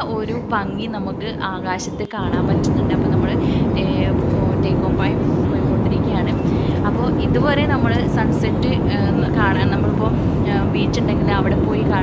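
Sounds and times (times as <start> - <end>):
jet airliner cabin roar: 0.0 - 12.0.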